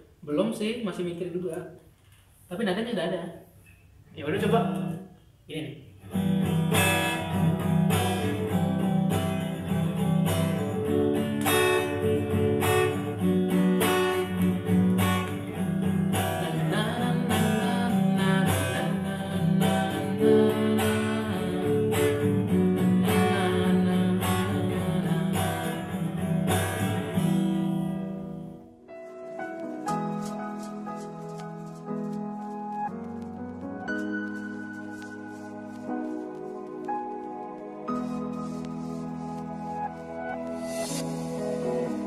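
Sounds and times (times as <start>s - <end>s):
acoustic guitar playing: 6.0s - 42.0s.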